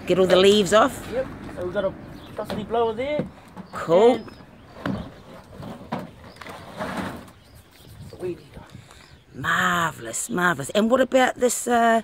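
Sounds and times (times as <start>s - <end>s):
equipment scraping and rattling in trailer: 2.1s - 7.6s.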